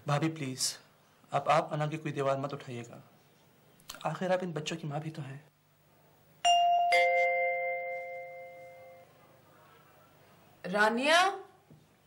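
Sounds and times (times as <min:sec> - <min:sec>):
ding-dong doorbell chime: 0:06.5 - 0:09.1.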